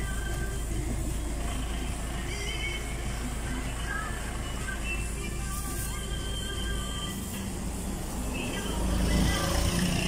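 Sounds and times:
motor vehicle rumbling: 0:00.0 - 0:10.0.

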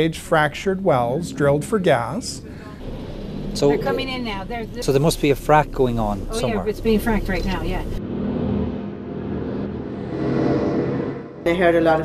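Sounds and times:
vehicle engine rumbling: 0:00.0 - 0:11.5.

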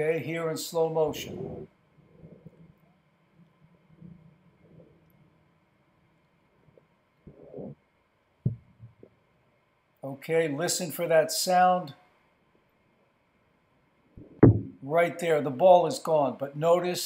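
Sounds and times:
faint low rumbling: 0:00.0 - 0:09.8, 0:14.0 - 0:15.4
dull thud: 0:14.4 - 0:14.8.

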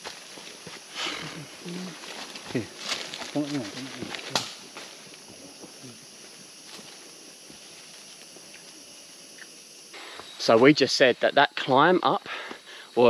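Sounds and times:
steady high hiss: 0:00.0 - 0:13.0
footsteps on leaf litter: 0:01.9 - 0:05.0
sharp snap: 0:04.3 - 0:04.6.

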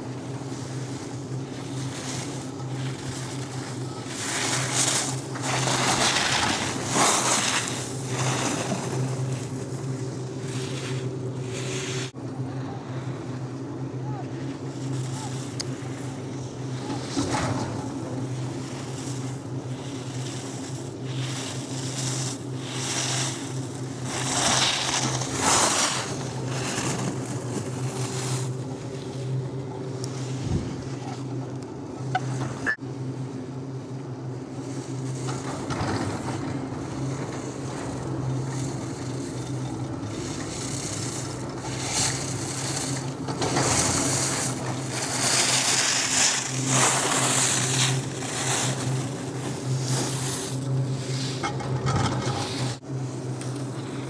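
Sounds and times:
skis scraping over snow: 0:00.0 - 0:12.2, 0:14.4 - 0:31.5, 0:34.5 - 0:53.2
low mechanical hum: 0:00.0 - 0:54.0.

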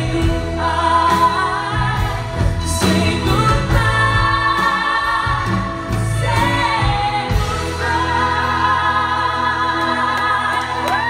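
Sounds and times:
live band playing: 0:00.0 - 0:11.0
woman singing lead vocal: 0:00.0 - 0:11.0
women singing harmony: 0:00.0 - 0:11.0.

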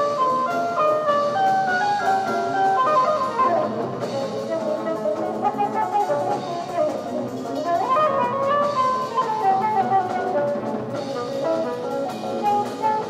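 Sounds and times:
drum kit: 0:00.0 - 0:13.0
jazz ensemble melodic lines: 0:00.0 - 0:13.0.

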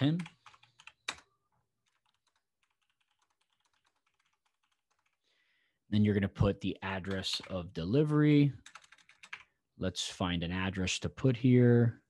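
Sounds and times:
typing on computer keyboard: 0:00.0 - 0:05.2, 0:08.6 - 0:09.5.

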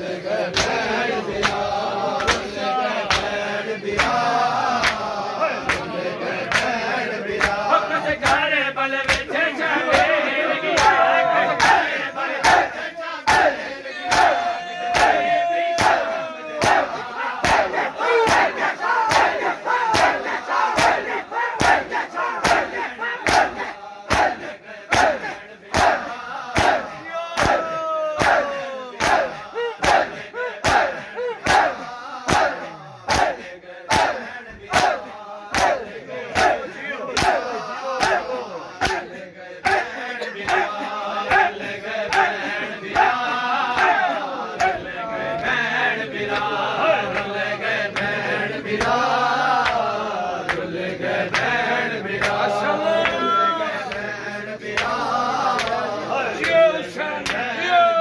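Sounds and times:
men chanting and shouting: 0:00.0 - 0:58.0
hands slapping bare chests: 0:00.5 - 0:00.8, 0:01.4 - 0:05.9, 0:06.5 - 0:06.8, 0:07.4 - 0:07.6, 0:08.2 - 0:09.3, 0:10.7 - 0:11.0, 0:13.3 - 0:15.2, 0:15.8 - 0:41.5, 0:42.1 - 0:44.8, 0:52.2 - 0:52.4, 0:54.7 - 0:56.6.

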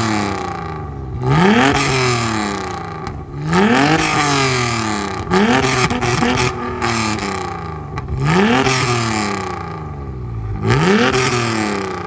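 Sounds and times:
car engine revving: 0:00.0 - 0:12.0.

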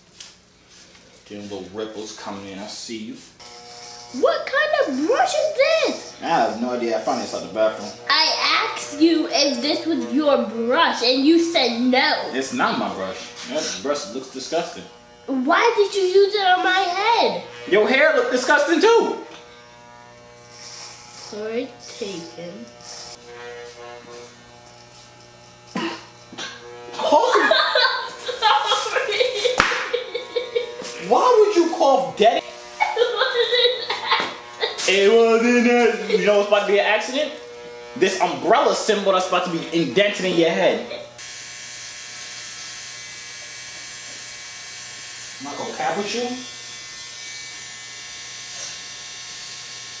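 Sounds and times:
electric hair clippers buzzing: 0:00.2 - 0:50.0.

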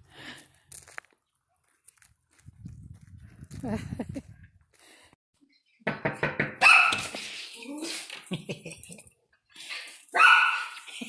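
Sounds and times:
woman laughing and talking: 0:03.5 - 0:04.4
dog barking: 0:06.6 - 0:07.1, 0:10.2 - 0:10.8.

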